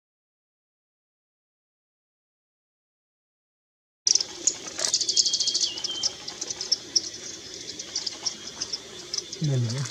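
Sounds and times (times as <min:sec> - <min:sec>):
bird calling with high thin chips: 0:04.1 - 0:09.9.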